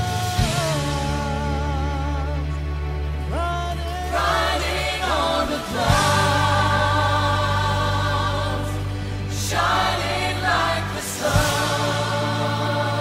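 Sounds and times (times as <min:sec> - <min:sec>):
low musical accompaniment: 0:00.0 - 0:13.0
group singing gospel song: 0:03.9 - 0:13.0.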